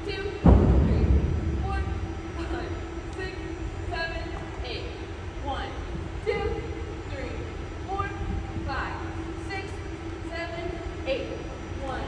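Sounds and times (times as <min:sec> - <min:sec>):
low rumble and hum: 0:00.0 - 0:12.0
woman calling out counts: 0:00.0 - 0:12.0.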